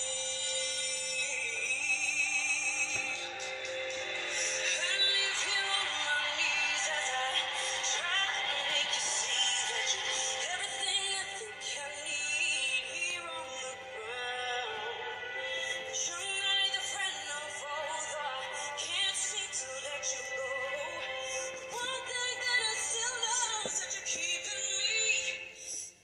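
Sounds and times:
person singing with gliding pitch: 0.0s - 25.4s
instrumental backing music: 0.0s - 25.8s.

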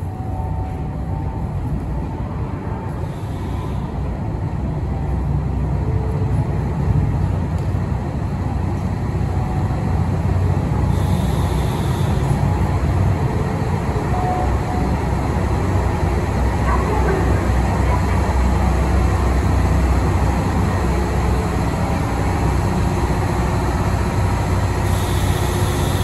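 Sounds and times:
diesel train engine rumbling: 0.0s - 26.0s.

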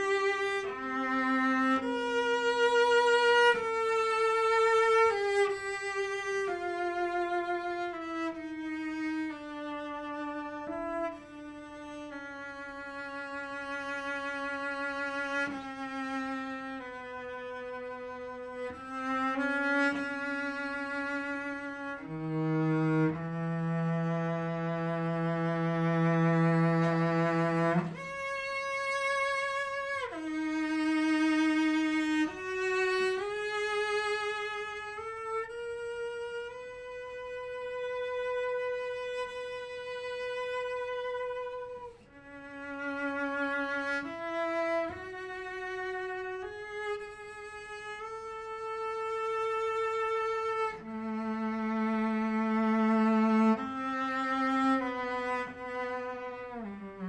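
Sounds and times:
cello bowing slow melody: 0.0s - 57.0s.

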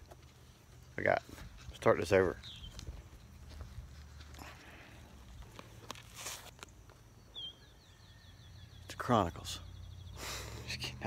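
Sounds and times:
short rustle: 2.6s - 6.8s.

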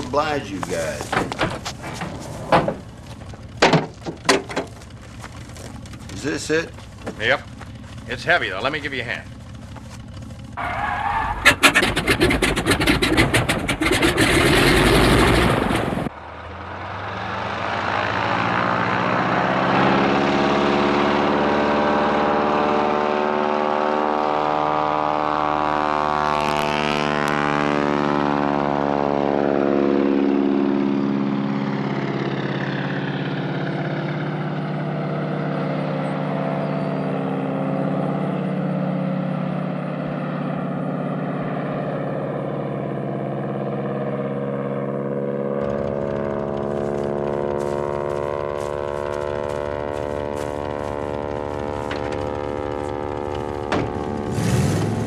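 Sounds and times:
propeller plane engine: 0.0s - 55.0s.

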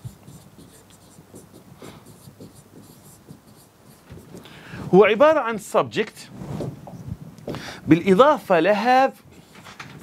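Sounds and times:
pen tapping and scratching on screen: 0.0s - 4.5s.

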